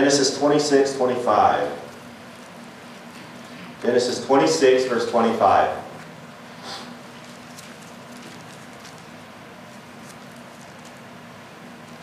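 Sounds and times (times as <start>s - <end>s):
low room hum: 0.0s - 12.0s
book pages turning: 7.1s - 11.1s.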